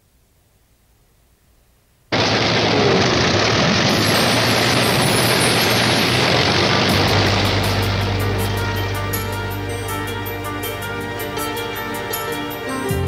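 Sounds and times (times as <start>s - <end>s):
piston aircraft engines running: 2.1s - 12.4s
music: 5.2s - 13.0s.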